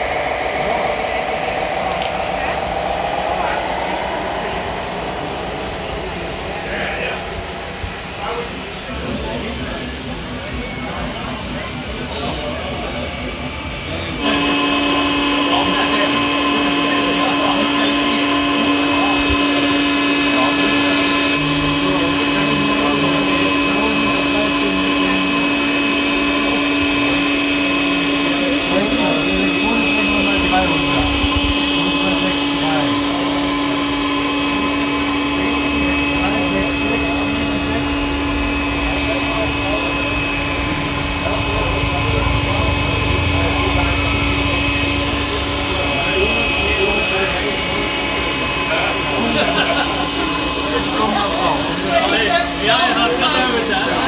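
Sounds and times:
crowd chatter: 0.0s - 54.0s
model sweeper whining hum: 0.0s - 54.0s.

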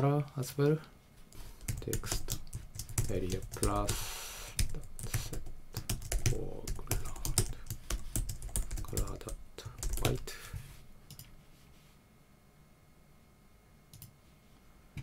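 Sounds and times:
computer keyboard typing: 1.6s - 4.0s, 4.6s - 10.3s.

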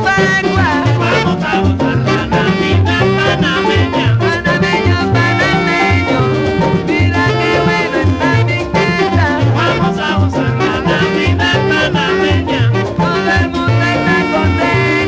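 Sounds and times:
dance orchestra playing: 0.0s - 15.0s.

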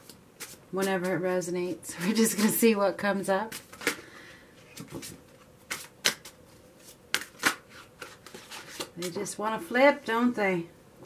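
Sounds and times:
cards rustling and snapping: 3.5s - 4.1s, 4.7s - 9.1s.

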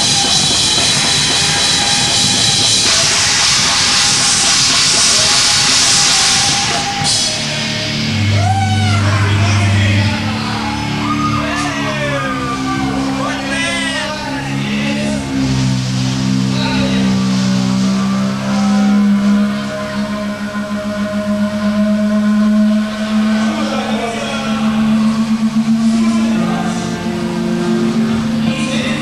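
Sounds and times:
distorted electric guitars: 0.0s - 29.0s
shouted vocals: 6.4s - 15.4s.

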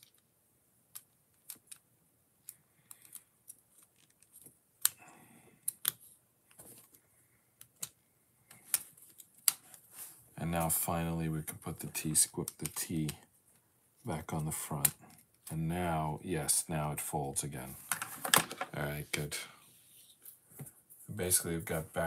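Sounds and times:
plastic parts clicking together: 0.9s - 5.0s, 5.6s - 6.7s, 7.6s - 9.8s.

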